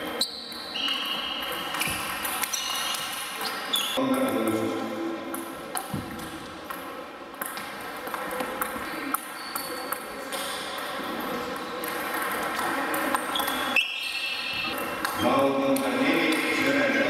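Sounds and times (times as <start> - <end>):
table tennis ball pinging: 11.8 - 16.5.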